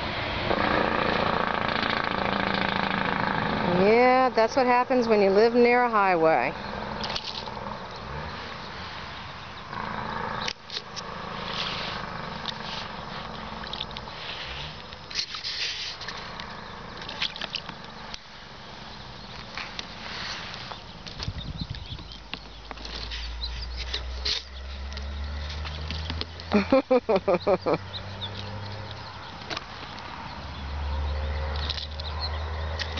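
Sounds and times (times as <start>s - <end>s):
deep traffic rumble: 0.0s - 32.9s
highway traffic hum: 0.0s - 32.9s
animal splashing water in a tub: 16.5s - 18.1s.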